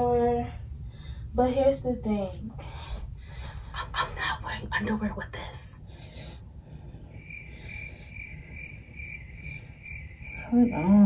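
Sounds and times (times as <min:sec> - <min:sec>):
cricket chirping: 0:07.1 - 0:11.0.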